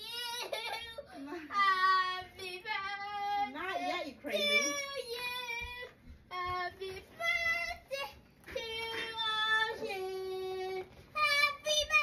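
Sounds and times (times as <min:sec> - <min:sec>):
girl singing: 0:00.0 - 0:12.0.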